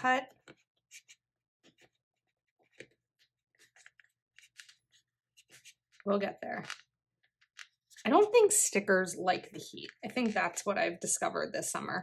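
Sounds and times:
sticker page rustling: 2.6 - 6.8.

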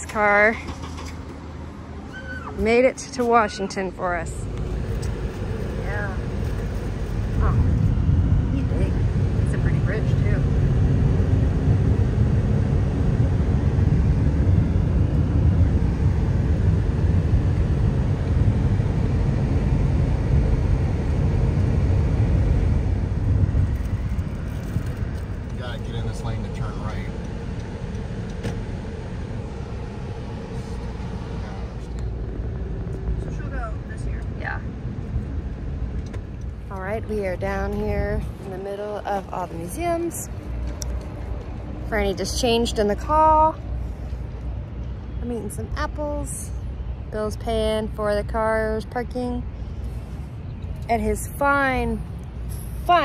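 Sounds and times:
road and tyre noise in car: 0.0 - 53.0.

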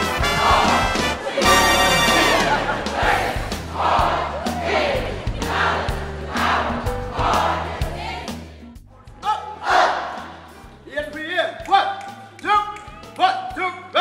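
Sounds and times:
crowd shouting rhythmic cheer: 0.0 - 8.4, 9.2 - 10.5.

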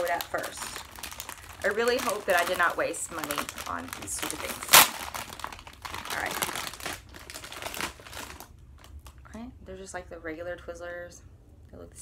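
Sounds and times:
plastic wrapper crinkling: 0.0 - 9.3.

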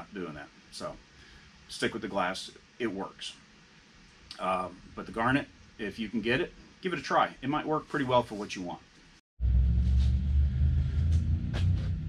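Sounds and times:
low machine hum: 9.4 - 12.0.

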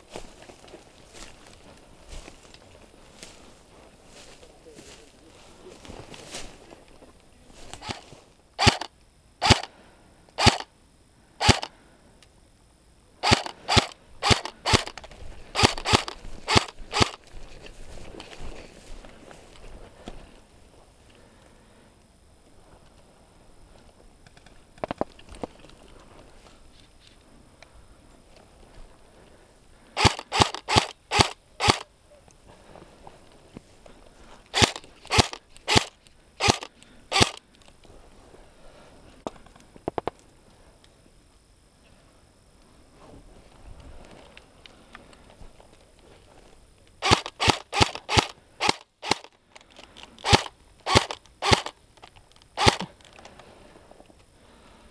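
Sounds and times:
airsoft guns firing: 7.8 - 9.7, 10.4 - 10.7, 11.4 - 11.7, 13.2 - 17.2, 30.0 - 31.8, 34.6 - 37.4, 47.0 - 49.3, 50.2 - 51.8, 52.6 - 52.9.

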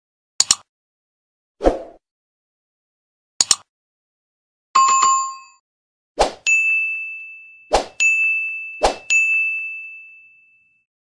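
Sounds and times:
bright bell-like ding: 6.5 - 10.9
chime ding: 6.5 - 10.9.

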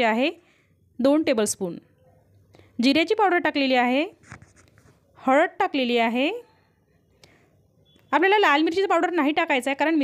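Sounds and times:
woman speaking: 0.0 - 0.4, 1.0 - 2.0, 2.8 - 4.2, 5.2 - 6.6, 8.1 - 10.0
faint scratchy sounds: 3.5 - 5.5.

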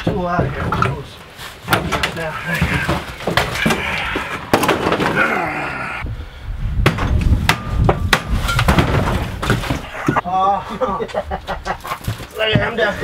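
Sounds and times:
wood knocking and cracking: 1.7 - 5.3, 6.8 - 10.2.

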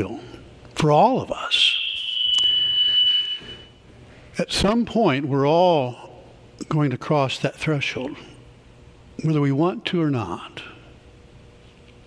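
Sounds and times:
high-pitched tone: 1.7 - 3.8.

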